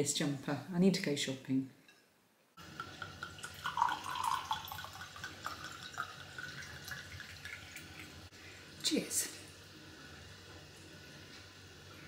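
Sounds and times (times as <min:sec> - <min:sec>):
wine pouring into glass: 0:02.6 - 0:08.3.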